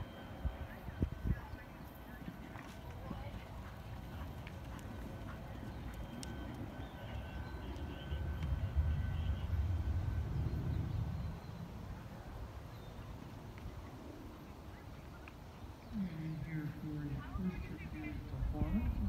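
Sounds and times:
horse hoofbeats on dirt: 2.2s - 8.6s.

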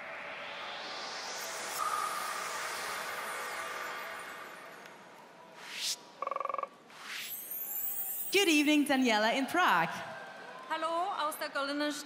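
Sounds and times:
whoosh: 5.5s - 6.1s, 6.9s - 8.3s.

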